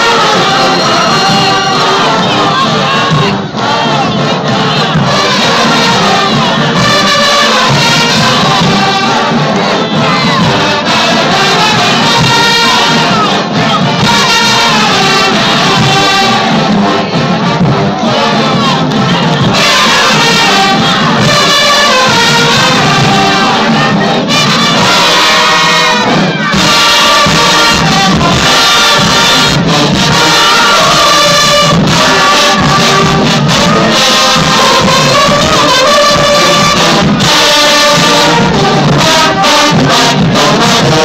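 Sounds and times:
crowd shouting and cheering: 0.0s - 41.0s
marching band playing: 0.0s - 41.0s.

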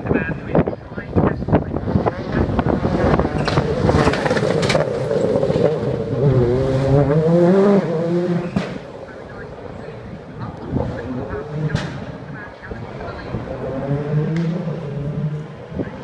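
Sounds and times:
rally car engine passing: 0.5s - 16.0s
sharp bang: 11.7s - 12.2s.

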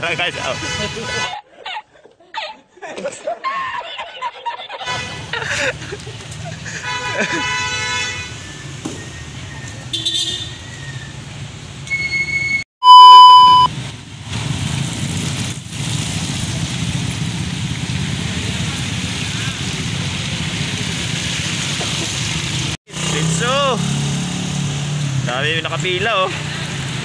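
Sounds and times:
vehicle engines rumbling: 5.0s - 12.5s, 13.7s - 27.0s
loud short beep: 11.9s - 13.7s.

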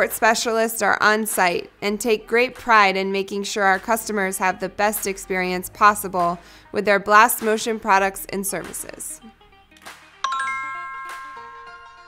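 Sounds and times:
bright bell-like chime: 10.2s - 12.0s.

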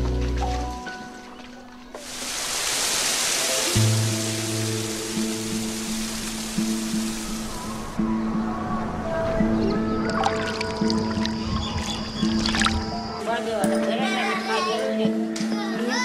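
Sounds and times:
slow music of held notes: 0.0s - 2.1s
falling water rushing: 1.9s - 8.0s.

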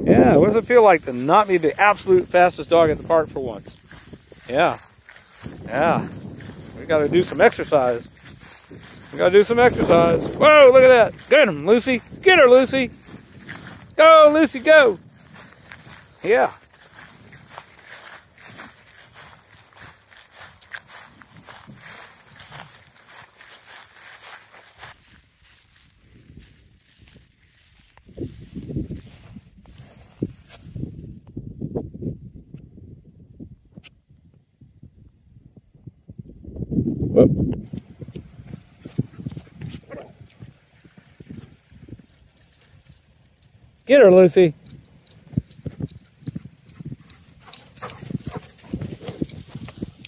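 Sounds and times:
footsteps in meadow grass: 0.2s - 31.0s, 45.2s - 50.0s.

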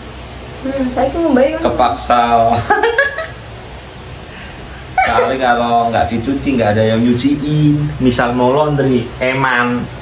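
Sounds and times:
person laughing: 2.6s - 3.4s, 5.0s - 5.5s.

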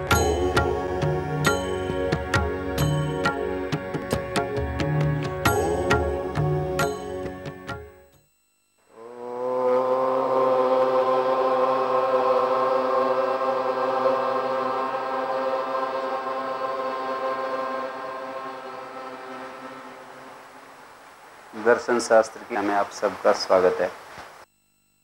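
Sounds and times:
man chanting low note: 8.9s - 13.6s.

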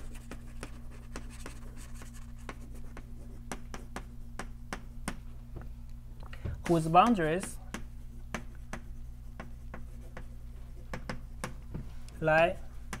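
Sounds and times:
chalk writing on blackboard: 0.0s - 4.9s, 6.6s - 13.0s
steady low hum: 0.0s - 13.0s.

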